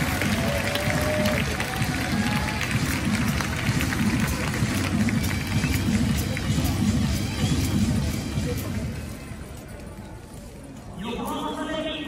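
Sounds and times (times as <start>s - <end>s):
stadium public-address music: 0.0s - 12.0s.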